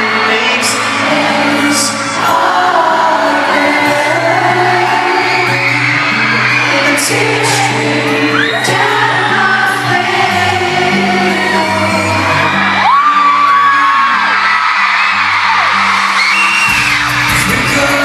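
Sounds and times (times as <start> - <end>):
man singing: 0.0 - 5.8, 6.4 - 14.4, 17.1 - 18.0
fans screaming and whooping: 0.0 - 18.0
live band playing: 14.4 - 18.0.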